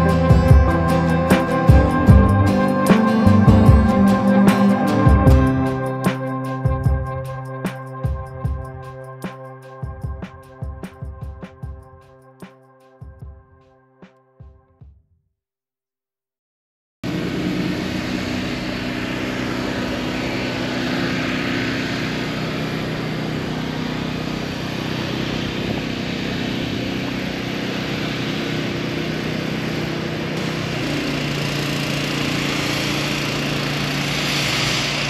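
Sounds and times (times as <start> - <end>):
engine running: 0.0 - 9.4, 17.0 - 35.0.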